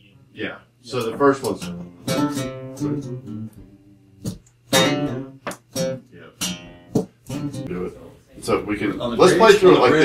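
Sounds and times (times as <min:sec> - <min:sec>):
acoustic guitar strums: 0:01.0 - 0:07.8.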